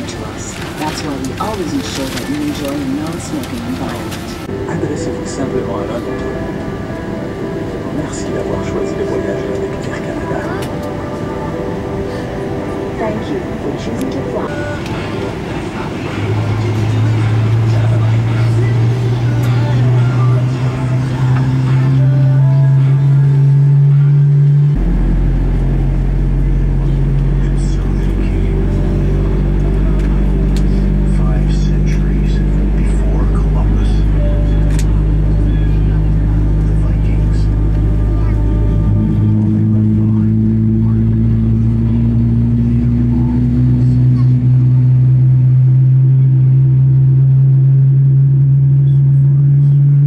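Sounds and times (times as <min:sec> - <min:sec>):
background music of sustained notes: 0:00.0 - 0:48.8
deep rumble of airliner cabin: 0:00.0 - 0:50.0.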